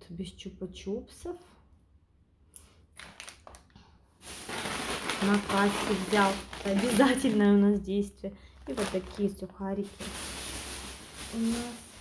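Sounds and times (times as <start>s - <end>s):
rustling hiss: 10.0s - 12.0s.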